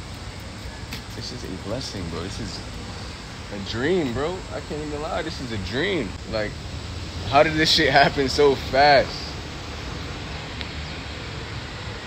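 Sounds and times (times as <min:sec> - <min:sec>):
low traffic rumble: 0:00.0 - 0:12.0
steady hiss: 0:00.0 - 0:12.0.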